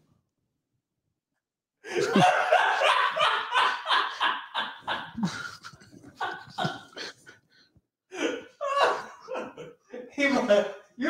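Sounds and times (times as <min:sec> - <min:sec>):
people laughing: 0:01.9 - 0:07.4, 0:08.1 - 0:10.6.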